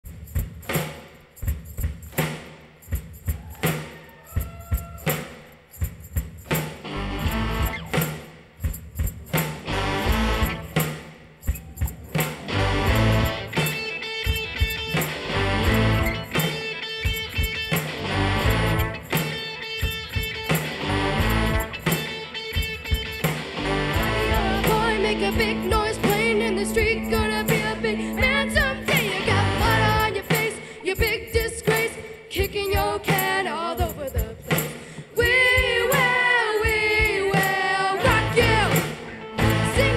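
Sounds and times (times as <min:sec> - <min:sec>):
rock band playing: 0:06.4 - 0:08.3, 0:09.1 - 0:30.8, 0:36.7 - 0:39.9.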